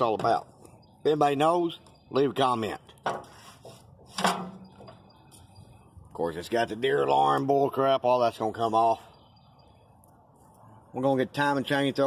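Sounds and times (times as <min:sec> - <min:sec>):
metal bracket clacking shut: 0:04.2 - 0:05.0.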